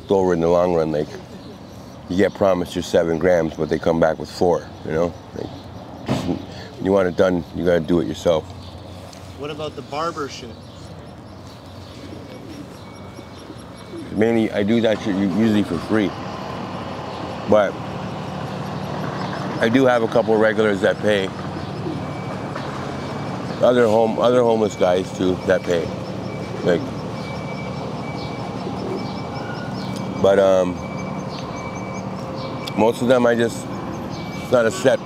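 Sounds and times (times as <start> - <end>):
low traffic hum: 0.0 - 35.0
faint bird calls: 0.5 - 16.5, 17.1 - 32.7
high-pitched chirping: 8.1 - 16.5, 17.1 - 34.7.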